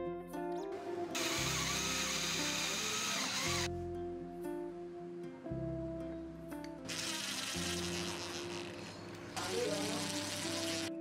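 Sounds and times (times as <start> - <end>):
cordless drill driving screws: 1.2 - 3.7, 6.9 - 8.8, 9.8 - 10.9.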